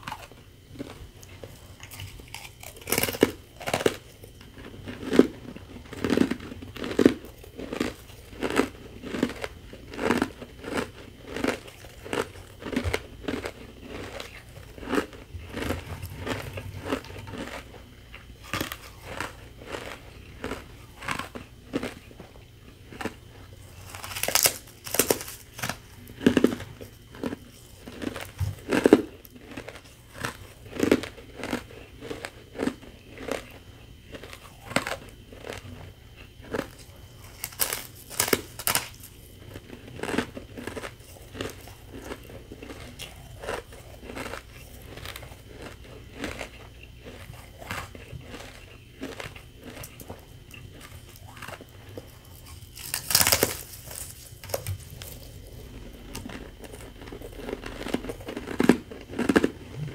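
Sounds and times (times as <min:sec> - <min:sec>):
crunchy chewing of ice: 0:00.0 - 0:59.9.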